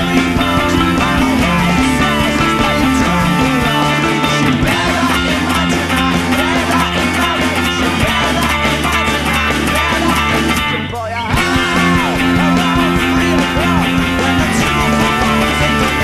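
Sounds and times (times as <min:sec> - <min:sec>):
bass and drums: 0:00.0 - 0:16.0
electric guitars playing rock: 0:00.0 - 0:16.0.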